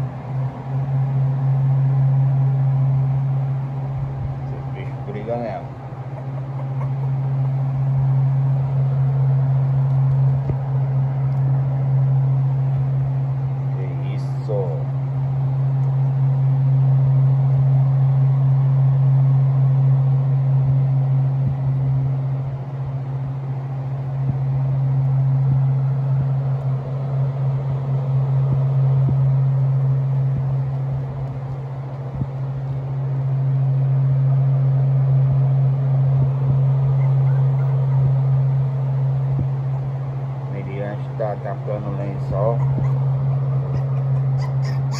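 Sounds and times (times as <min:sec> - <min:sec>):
steady low hum: 0:00.0 - 0:44.9.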